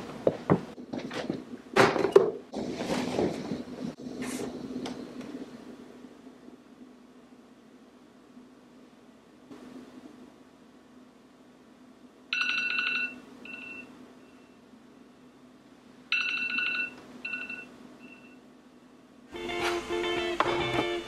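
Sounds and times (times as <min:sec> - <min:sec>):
phone alarm chime: 0:12.4 - 0:13.9, 0:16.1 - 0:18.3
guitar background music: 0:19.3 - 0:21.0.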